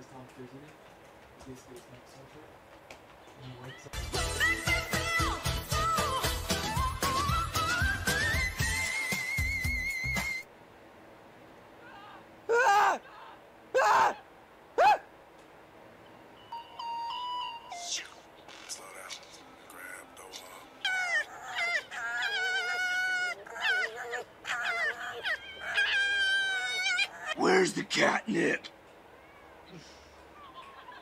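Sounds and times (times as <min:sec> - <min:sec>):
kitten mewing: 0:20.3 - 0:27.6
foxes screaming: 0:20.4 - 0:28.1.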